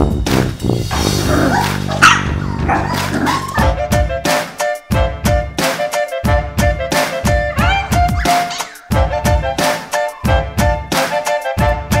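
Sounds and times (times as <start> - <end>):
swing band music: 0.0 - 12.0
puppy yipping: 1.5 - 3.7.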